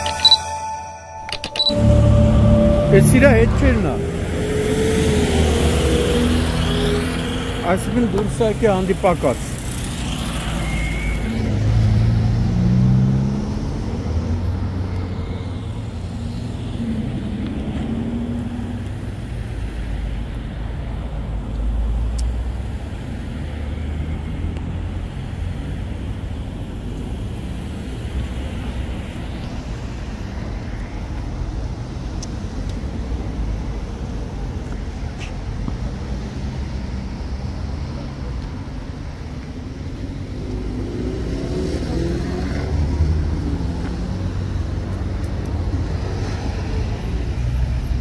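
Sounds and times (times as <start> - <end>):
loud vehicles passing: 1.7 - 32.0, 33.2 - 48.0
highway traffic rumble: 1.8 - 48.0.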